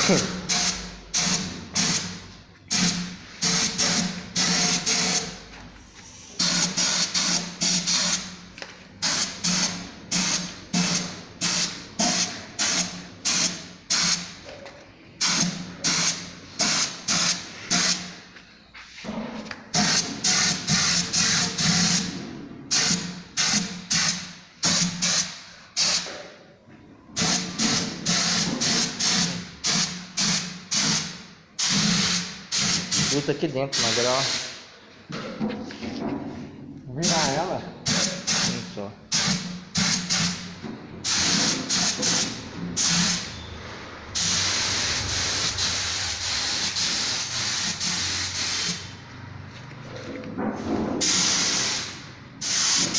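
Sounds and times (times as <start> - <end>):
paint spray gun bursts: 2.7 - 5.3, 6.4 - 8.2, 19.8 - 22.1, 27.2 - 33.2, 33.8 - 34.6, 37.9 - 40.4, 51.0 - 52.9.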